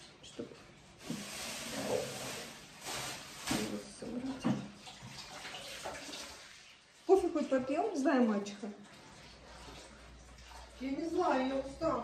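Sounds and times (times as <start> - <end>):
water running from tap: 1.0 - 12.0.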